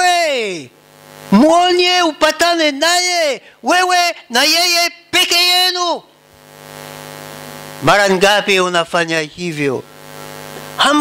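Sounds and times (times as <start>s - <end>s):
man speaking: 0.0s - 0.7s, 1.3s - 6.1s, 7.8s - 9.9s, 10.8s - 11.0s
low electrical hum: 0.0s - 11.0s.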